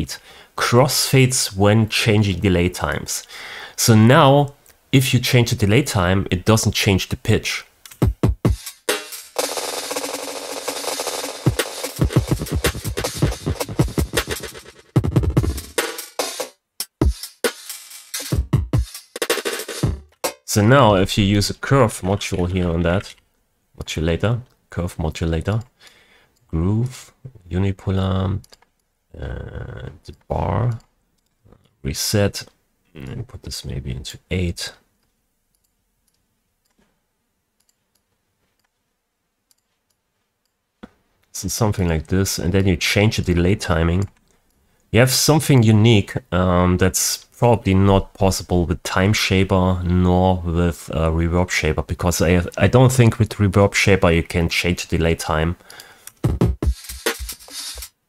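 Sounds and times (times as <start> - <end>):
drum loop with echo repeats: 7.9 - 20.5, 56.2 - 58.0.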